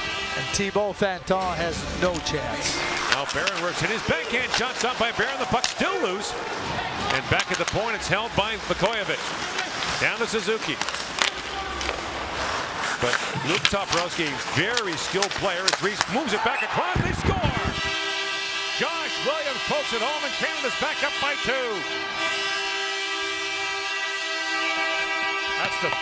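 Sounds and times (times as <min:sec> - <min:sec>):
arena goal horn blast: 0:00.0 - 0:01.0, 0:02.7 - 0:12.0, 0:13.8 - 0:26.0
arena crowd murmur: 0:02.5 - 0:08.2
skate blades scraping ice: 0:02.7 - 0:16.6
stick hitting puck: 0:02.9 - 0:05.9, 0:07.0 - 0:07.9, 0:10.6 - 0:12.1, 0:13.1 - 0:17.0.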